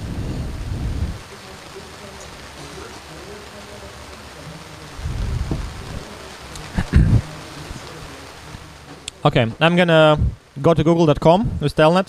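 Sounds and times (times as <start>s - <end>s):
low thumps and rumbles: 0.0s - 1.2s, 5.0s - 6.1s, 8.5s - 10.5s
steady hiss: 0.0s - 12.0s.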